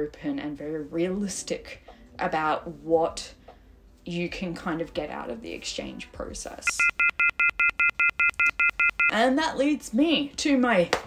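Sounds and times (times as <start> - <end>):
rapid electronic beeping: 6.8 - 9.1.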